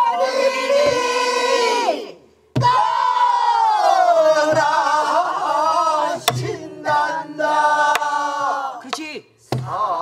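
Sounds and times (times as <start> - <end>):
group singing in unison: 0.0 - 10.0.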